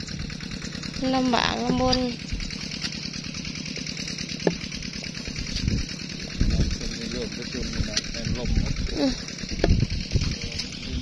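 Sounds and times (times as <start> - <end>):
walking tractor engine running: 0.0 - 11.0.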